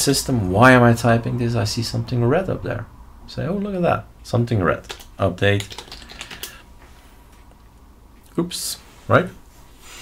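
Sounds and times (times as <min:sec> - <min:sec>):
computer keyboard keystrokes: 0:04.8 - 0:06.6.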